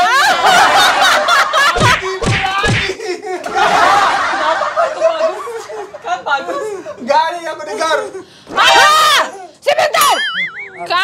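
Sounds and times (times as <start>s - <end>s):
group of people laughing: 0.0s - 7.1s.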